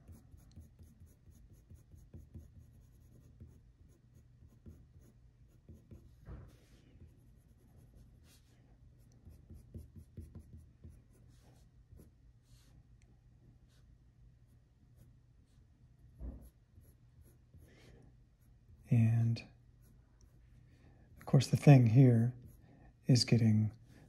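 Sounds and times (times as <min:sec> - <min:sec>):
pencil scratching on paper: 0:00.0 - 0:12.6, 0:16.2 - 0:17.8, 0:21.8 - 0:22.7.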